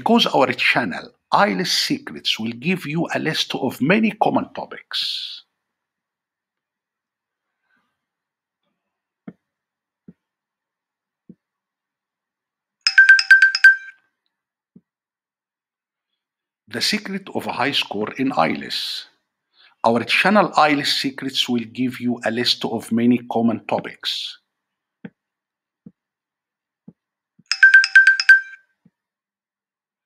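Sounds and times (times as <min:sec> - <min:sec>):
electronic chime jingle: 0:12.9 - 0:13.9, 0:27.5 - 0:28.6.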